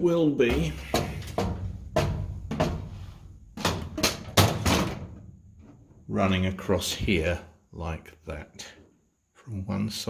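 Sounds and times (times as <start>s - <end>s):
metal parts knocking and clattering: 0.5s - 6.0s.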